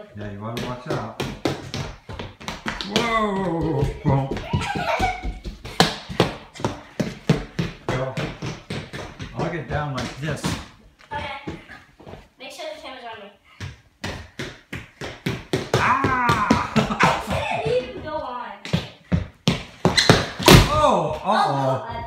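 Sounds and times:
roller shoes clattering on floor: 0:00.2 - 0:12.3, 0:13.6 - 0:20.8
hard thud of a fall: 0:20.0 - 0:20.9.

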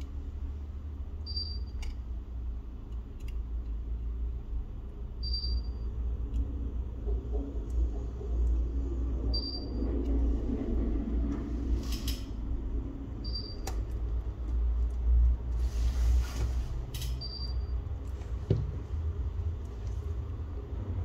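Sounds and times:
low steady rumble: 0:00.0 - 0:21.0.

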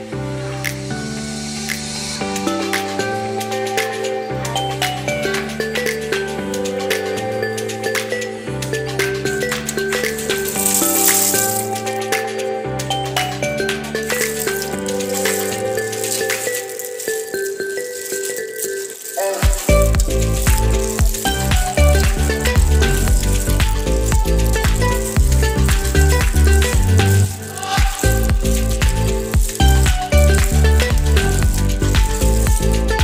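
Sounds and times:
song with steady melody: 0:00.0 - 0:33.0
rattling percussion: 0:07.6 - 0:33.0
heavy bass beat: 0:19.5 - 0:33.0.

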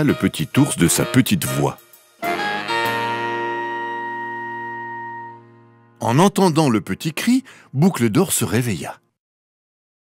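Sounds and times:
plucked guitar notes and chord: 0:02.2 - 0:06.1.

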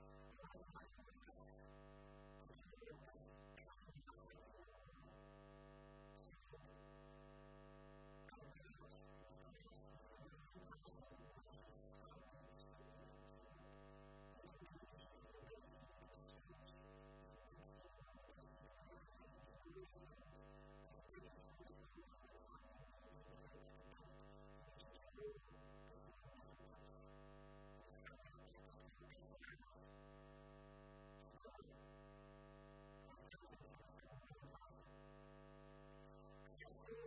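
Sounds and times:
quiet pitched tone: 0:36.0 - 0:37.0.

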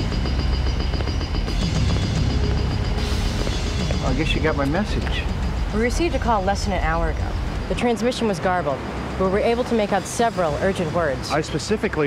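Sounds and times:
soundtrack music: 0:00.0 - 0:07.6.

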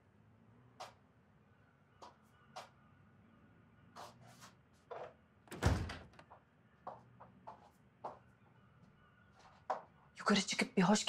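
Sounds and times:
door closing with a thud: 0:05.5 - 0:06.3.

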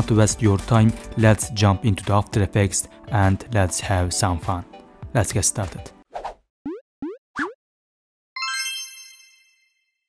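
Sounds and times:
bell-like chime: 0:08.4 - 0:10.0.

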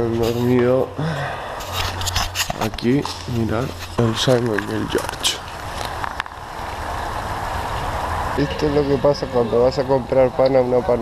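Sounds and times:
rushing outdoor background noise: 0:00.0 - 0:11.0.

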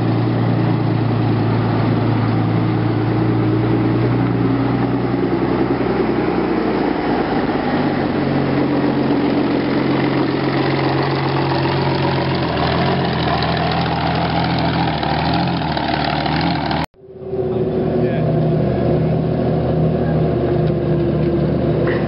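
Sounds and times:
tank engine driving past: 0:00.0 - 0:22.0.

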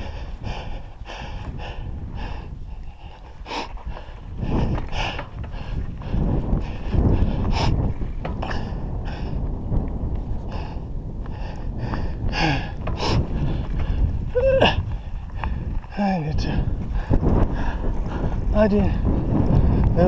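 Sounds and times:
bike tyres rumbling on dirt: 0:00.0 - 0:20.0
wind on microphone: 0:00.0 - 0:20.0
bike knocks and rattles: 0:03.8 - 0:10.3, 0:11.8 - 0:14.3.

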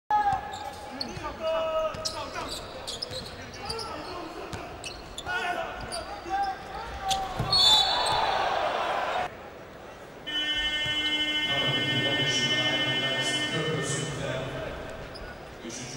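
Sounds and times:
sneaker squeaks on hardwood: 0:00.4 - 0:08.3
crowd cheering: 0:07.4 - 0:09.3.

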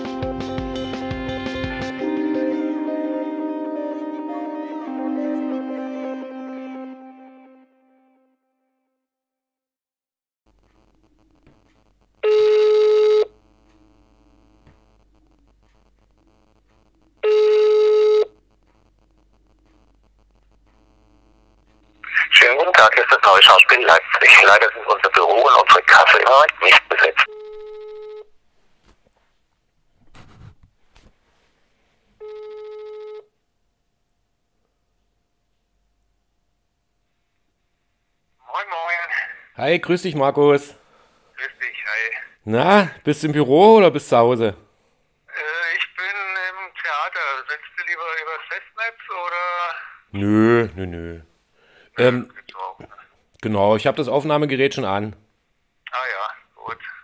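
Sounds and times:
faint phone line hum: 0:10.5 - 0:28.4, 0:32.2 - 0:33.4
telephone ringback tone: 0:12.2 - 0:13.3, 0:17.2 - 0:18.4, 0:27.3 - 0:28.3, 0:32.2 - 0:33.3.

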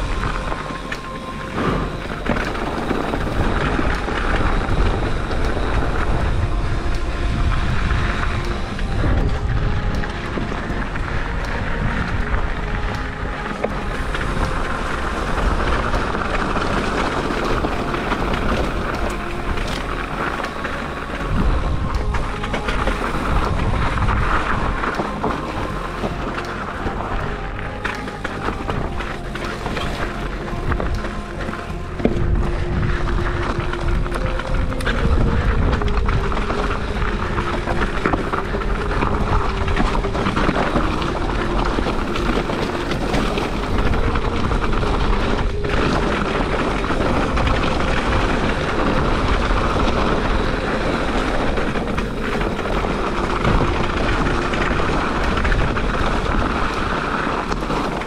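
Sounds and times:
instrumental background music: 0:00.0 - 0:58.0.

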